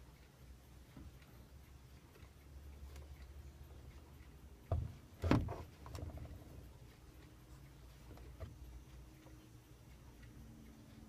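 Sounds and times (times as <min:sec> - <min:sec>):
small clicks and rattles: 0:01.9 - 0:07.0.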